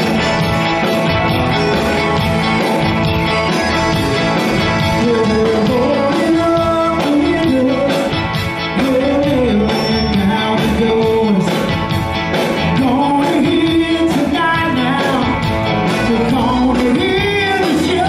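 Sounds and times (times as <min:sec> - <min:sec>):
live rock band with accordion: 0:00.0 - 0:18.0.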